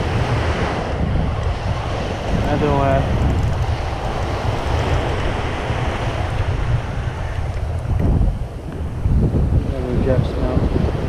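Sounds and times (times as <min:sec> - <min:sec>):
surf washing up beach: 0:00.0 - 0:11.0
wind buffeting microphone: 0:00.0 - 0:11.0.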